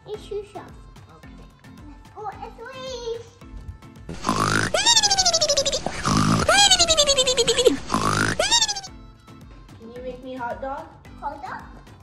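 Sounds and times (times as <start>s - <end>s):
cartoon snoring: 4.1s - 8.9s.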